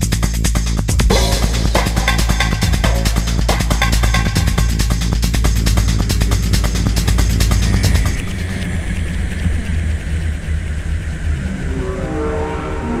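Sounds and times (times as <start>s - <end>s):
kick drum and hi-hats: 0.0s - 8.2s
rumbling bass drone: 0.0s - 13.0s
rising synth line: 0.9s - 13.0s
falling noise sweep: 1.0s - 13.0s.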